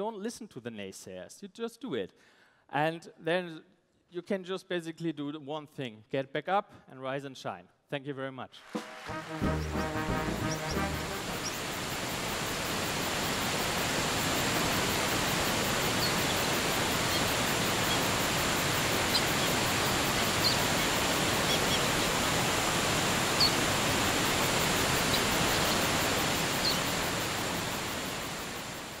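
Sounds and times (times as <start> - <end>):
waterfall rushing: 8.6 - 29.0
high bird chirps: 9.1 - 11.6, 19.0 - 19.6, 20.2 - 22.1, 23.4 - 23.6.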